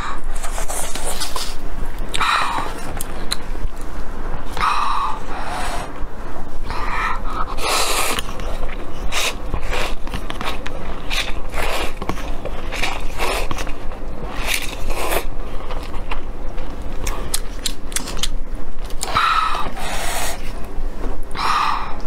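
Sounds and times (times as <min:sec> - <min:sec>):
slurping noodles: 0:06.8 - 0:08.4, 0:09.0 - 0:15.3.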